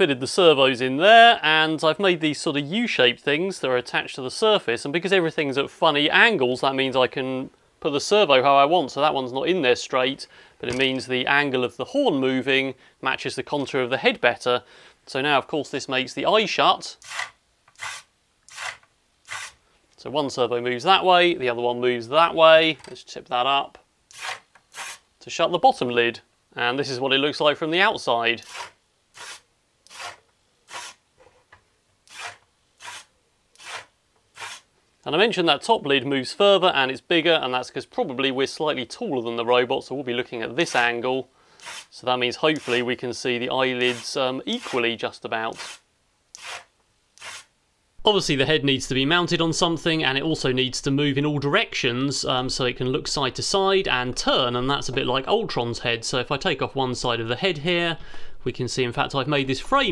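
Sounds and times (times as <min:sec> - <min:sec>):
short rubbing sounds: 0:17.0 - 0:19.6, 0:24.1 - 0:25.0, 0:28.4 - 0:31.5, 0:32.1 - 0:34.7, 0:41.6 - 0:41.9, 0:46.4 - 0:47.5.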